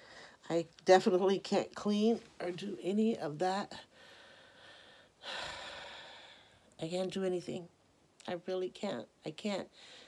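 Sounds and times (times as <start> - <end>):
woman breathing heavily: 0.0 - 0.4, 3.8 - 6.7, 9.7 - 10.0.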